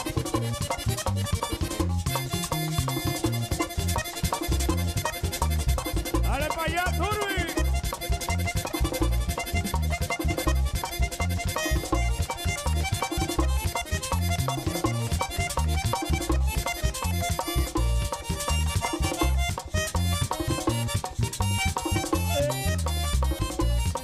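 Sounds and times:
button accordion fast runs: 0.0 - 24.0
driving percussion: 0.0 - 24.0
pulsing bass guitar: 0.0 - 24.0.

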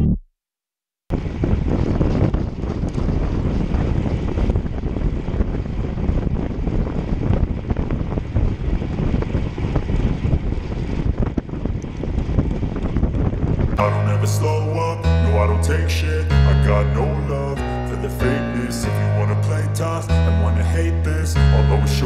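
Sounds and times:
wind buffeting camera microphone: 1.1 - 15.0.

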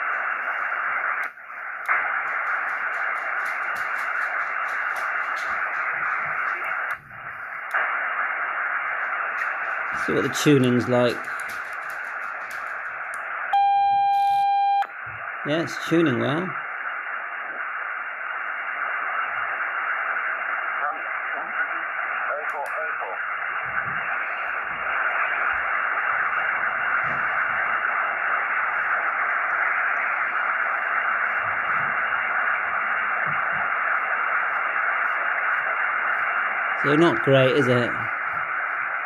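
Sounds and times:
radio band noise hiss: 0.0 - 39.0.

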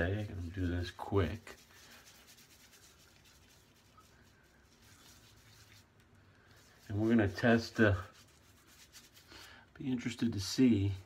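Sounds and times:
hand rubbing shaving foam: 0.0 - 11.0.

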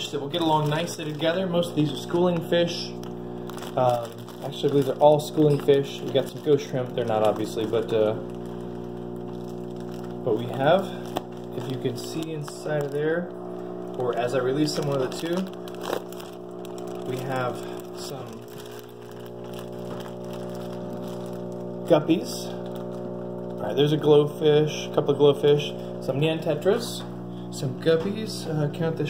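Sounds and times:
aquarium filter motor humming: 0.0 - 29.0.

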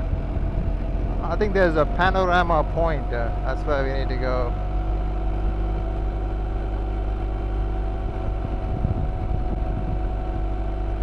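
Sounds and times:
wind noise on microphone: 0.0 - 1.4, 7.2 - 11.0
motorcycle engine cruising: 0.0 - 11.0.

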